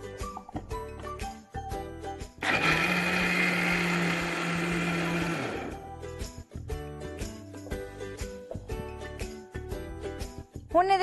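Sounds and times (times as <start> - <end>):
mixer grinder grinding: 2.4 - 5.8.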